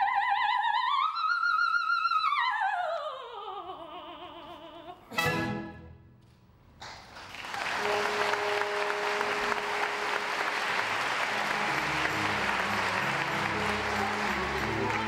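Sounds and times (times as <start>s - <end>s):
orchestra playing: 5.1s - 6.1s, 7.7s - 15.0s
audience applauding: 6.8s - 15.0s.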